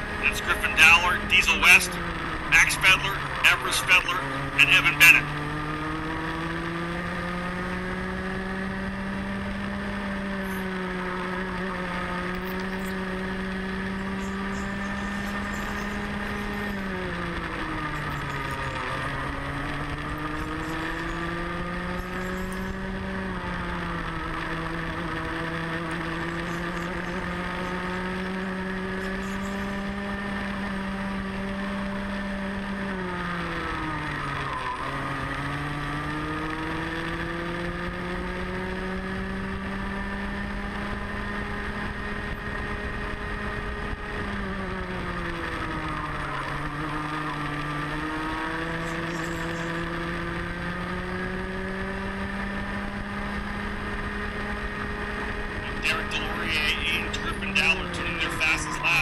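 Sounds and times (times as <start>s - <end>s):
kart engine at high revs: 0.0s - 59.0s.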